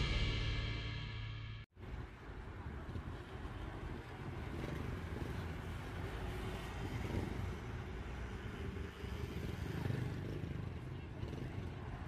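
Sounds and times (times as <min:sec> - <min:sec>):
passing vehicles rumble: 0:01.8 - 0:12.0
motorcycle passing: 0:02.0 - 0:12.0.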